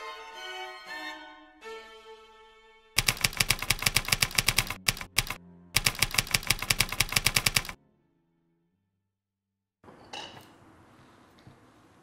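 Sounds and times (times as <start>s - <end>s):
typewriter key clacks: 3.0s - 7.8s.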